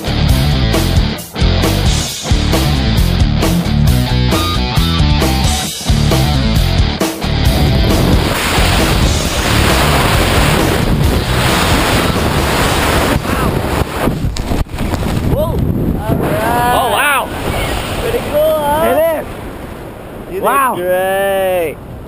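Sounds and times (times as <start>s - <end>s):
wind rushing over microphone: 7.4s - 22.0s.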